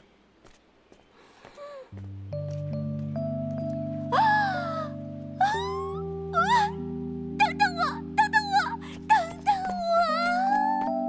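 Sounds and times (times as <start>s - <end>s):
soft background music: 1.6s - 11.0s.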